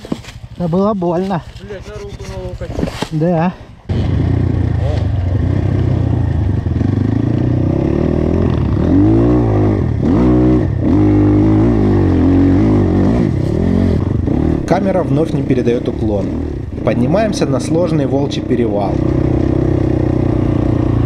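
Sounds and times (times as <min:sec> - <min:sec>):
motorcycle engine revving: 0:03.8 - 0:21.0.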